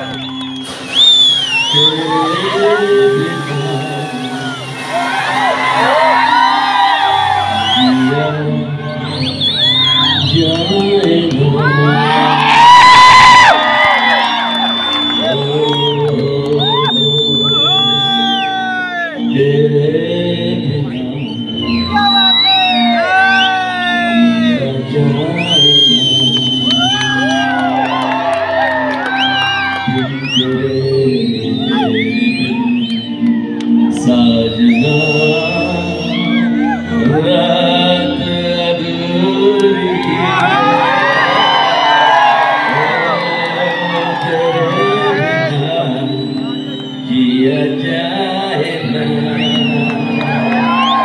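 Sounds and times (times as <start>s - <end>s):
crowd whooping and cheering: 0.0s - 51.0s
music: 0.0s - 51.0s
man singing into a microphone: 1.4s - 27.7s, 29.5s - 50.9s.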